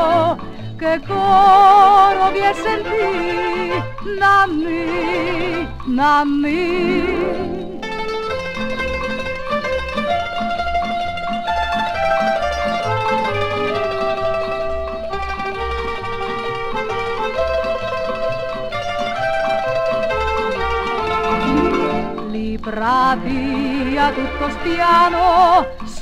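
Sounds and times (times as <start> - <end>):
plucked-string melody: 0.0 - 26.0.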